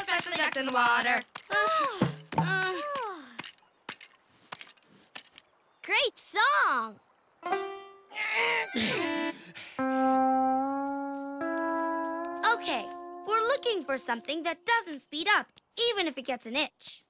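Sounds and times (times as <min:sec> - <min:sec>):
background music of held chords: 0:08.7 - 0:14.2.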